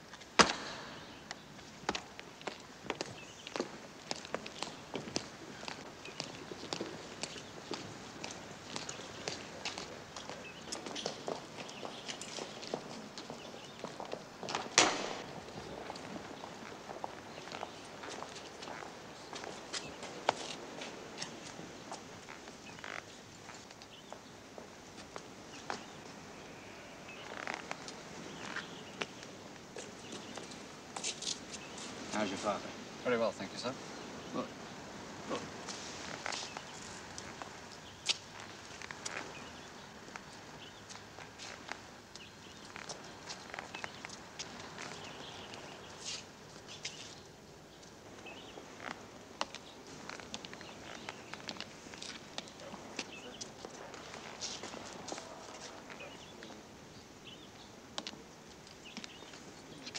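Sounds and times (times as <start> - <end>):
boots walking on stone: 0.1 - 26.0
sharp knocks: 0.4 - 1.0.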